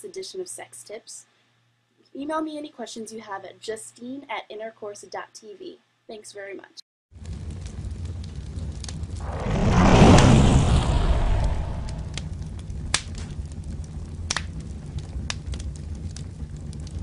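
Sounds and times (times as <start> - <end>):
fire crackles: 7.1 - 17.0
fireball whoosh: 7.2 - 15.3
low rumble: 8.8 - 15.1.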